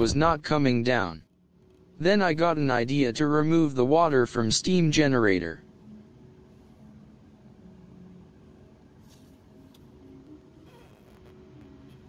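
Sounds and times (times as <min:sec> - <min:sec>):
faint hum and hiss: 0:00.0 - 0:12.0.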